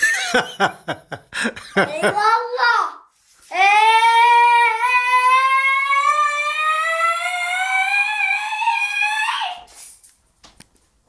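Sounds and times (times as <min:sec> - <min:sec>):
boy's voice holding long note: 0:03.6 - 0:09.7.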